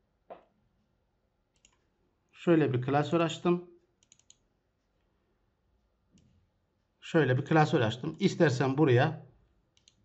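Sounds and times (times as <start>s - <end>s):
computer mouse click: 1.5s - 1.8s, 4.0s - 4.4s, 9.7s - 10.0s.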